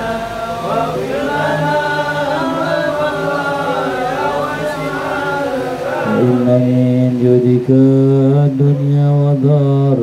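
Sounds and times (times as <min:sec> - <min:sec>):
voices chanting a prayer: 0:00.0 - 0:10.0.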